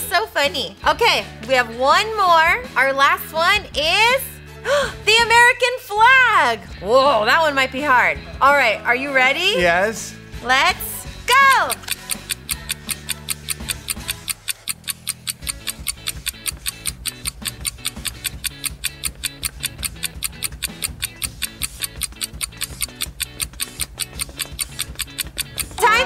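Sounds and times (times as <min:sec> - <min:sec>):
background music: 0:00.0 - 0:26.0
countdown timer ticking fast: 0:10.4 - 0:26.0.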